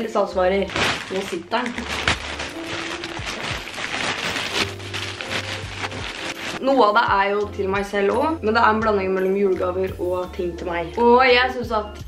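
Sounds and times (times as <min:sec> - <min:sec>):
plastic bag crinkling: 0:00.7 - 0:06.6.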